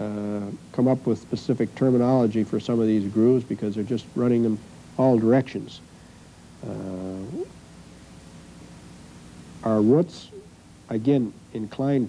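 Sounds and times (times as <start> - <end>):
man saying uh: 0.0 - 5.8, 6.6 - 7.5, 9.6 - 12.0
faint background hiss: 0.0 - 12.0.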